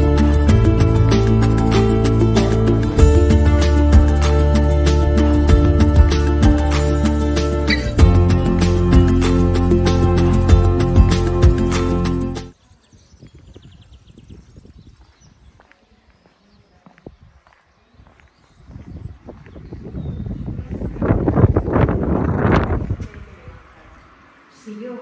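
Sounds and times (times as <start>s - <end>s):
background music: 0.0s - 12.6s
footsteps on stone paving: 14.4s - 21.3s.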